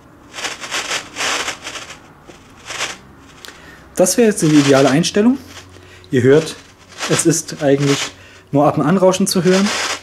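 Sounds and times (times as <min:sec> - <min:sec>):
radio static bursts: 0:06.4 - 0:08.2, 0:09.3 - 0:10.0.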